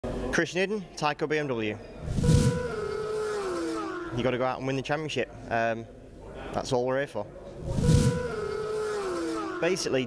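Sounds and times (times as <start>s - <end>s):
racing motorcycle engine: 2.1s - 4.0s, 7.7s - 9.4s.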